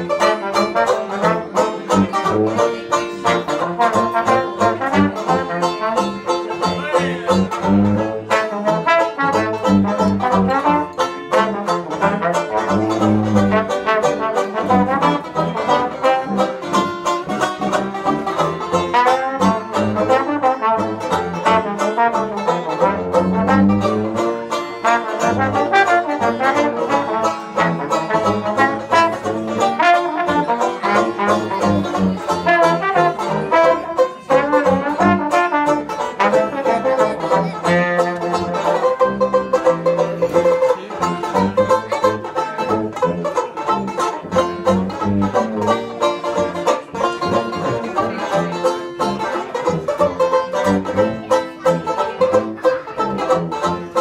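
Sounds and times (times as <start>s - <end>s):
trombone melody: 0.0s - 48.4s
strummed banjo chords: 0.0s - 54.0s
sousaphone bass line: 0.6s - 10.8s.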